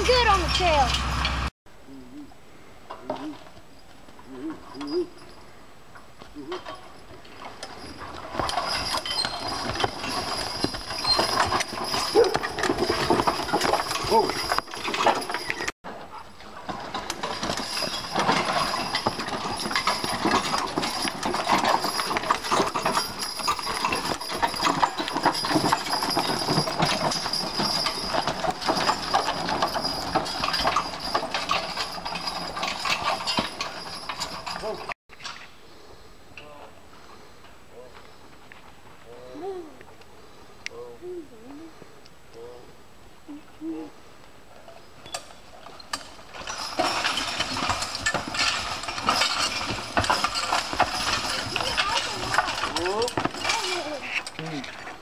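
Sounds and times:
harness chains rattling: 0.0 - 1.5, 2.9 - 35.4, 44.7 - 55.0.

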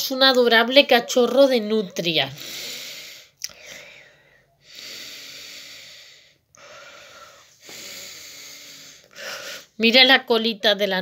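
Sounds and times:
person breathing: 2.4 - 9.8.

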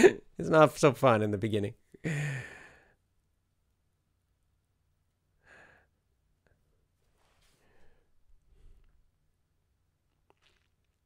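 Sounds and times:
man laughing: 0.0 - 0.3
faint breath: 5.4 - 6.0, 7.2 - 9.0.

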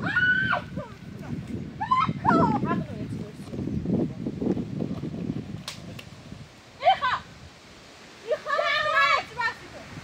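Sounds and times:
women shouting: 0.0 - 0.9, 1.8 - 2.8, 6.8 - 7.3, 8.2 - 9.6.

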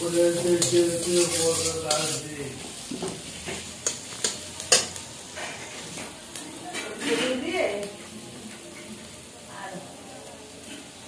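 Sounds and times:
onions sizzling in oil: 0.0 - 11.0
metal spatula scraping pan: 0.3 - 2.3
spatula clinking against pan: 0.5 - 2.2.

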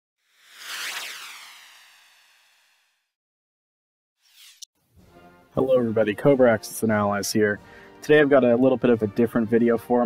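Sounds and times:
hissing whoosh sound effect: 0.3 - 2.9.

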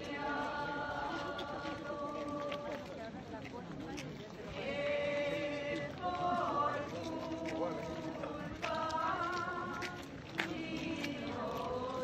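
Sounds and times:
people singing a hymn: 0.0 - 3.1, 4.5 - 12.0
mixed voices: 0.0 - 12.0.

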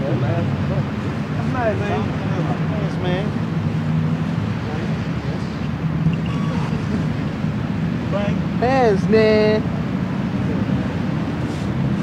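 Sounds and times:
voices: 0.0 - 3.5, 4.4 - 7.3, 8.0 - 9.7.

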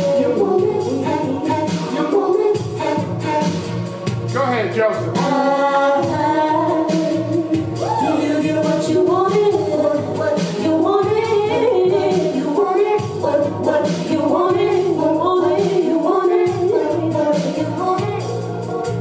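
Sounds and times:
woman singing into microphone: 0.0 - 4.3, 5.1 - 19.0
backing music with beat: 0.0 - 19.0.

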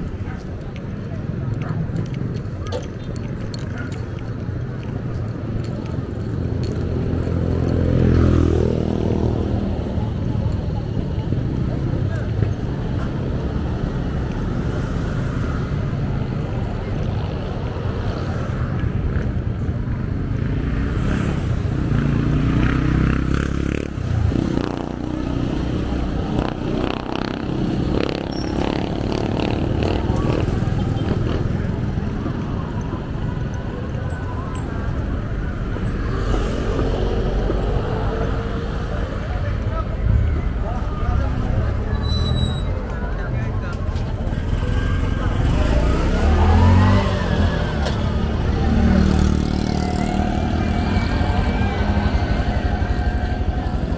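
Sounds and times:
motorcycles passing: 0.0 - 53.9
people talking: 29.3 - 53.9.

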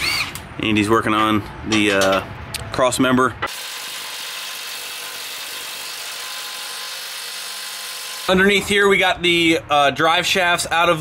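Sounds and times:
cordless power tool whirring: 3.5 - 8.6.

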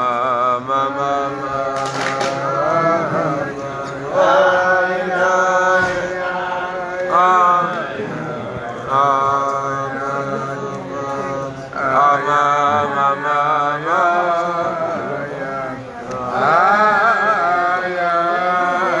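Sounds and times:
men singing wordless melody: 0.0 - 19.0.

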